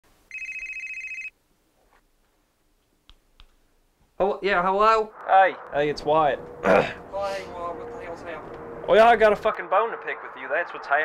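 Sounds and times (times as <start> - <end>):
electronic telephone ring: 0.3 - 1.4.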